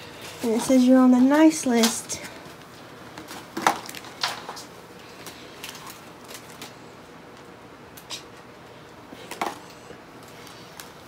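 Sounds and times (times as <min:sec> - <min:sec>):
wrapping paper rustling: 0:00.0 - 0:07.1.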